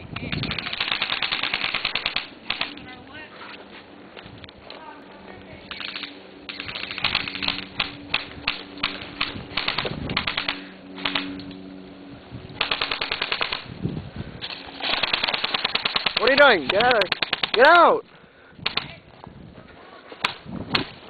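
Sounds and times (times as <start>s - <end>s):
airsoft rifles firing bursts: 0.4s - 2.8s, 5.7s - 11.4s, 12.6s - 13.7s, 14.8s - 17.9s.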